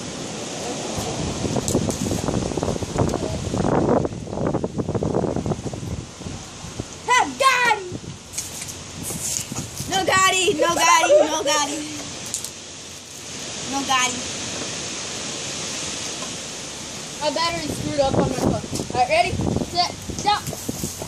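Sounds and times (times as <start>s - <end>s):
rough rustling noise: 0.0s - 21.0s
children laughing and calling out: 7.0s - 8.0s, 9.9s - 12.2s.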